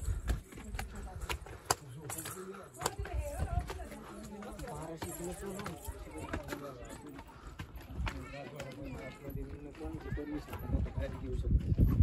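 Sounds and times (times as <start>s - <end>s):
people talking indistinctly: 0.0s - 11.8s
footsteps on dirt and stone: 0.0s - 12.0s.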